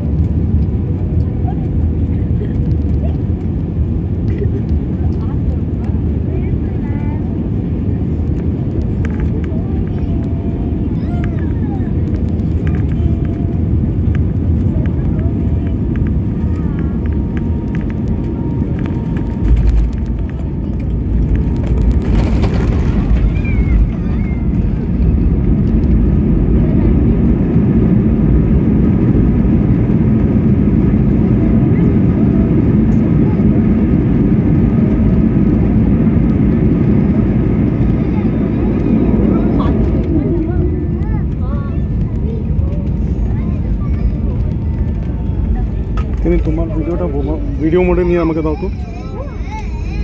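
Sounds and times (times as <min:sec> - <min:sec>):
airliner cabin rumble: 0:00.0 - 0:50.0
faint voices: 0:00.7 - 0:50.0.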